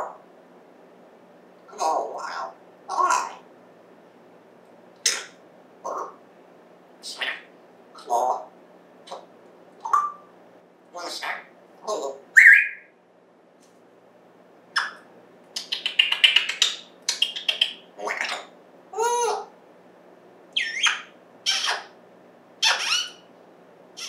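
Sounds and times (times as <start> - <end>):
parrot squawking and whistling: 5.0 - 6.2, 9.8 - 10.3, 12.3 - 12.9, 14.8 - 15.0, 15.6 - 19.5, 20.6 - 22.0, 22.6 - 23.3.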